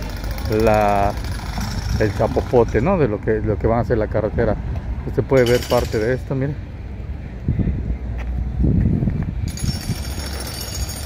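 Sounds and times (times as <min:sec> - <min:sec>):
low uneven street rumble: 0:00.0 - 0:11.0.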